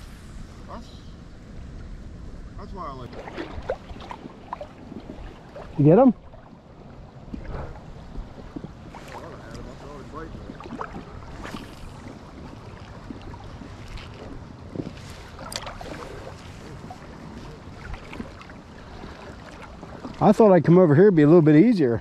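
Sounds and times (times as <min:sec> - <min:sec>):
wind buffeting microphone: 0:00.0 - 0:22.0
sharp splashes: 0:03.0 - 0:06.5, 0:08.9 - 0:20.3
water sloshing around wading legs: 0:03.0 - 0:21.8.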